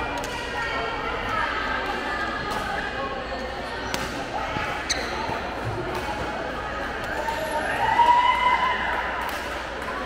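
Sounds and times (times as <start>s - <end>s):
chatter echoing in a hall: 0.0s - 10.0s.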